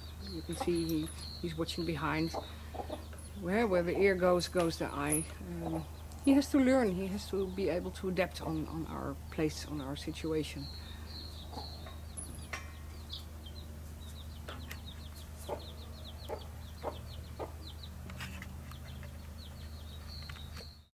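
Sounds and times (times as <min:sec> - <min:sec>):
birds chirping: 0:00.0 - 0:20.9.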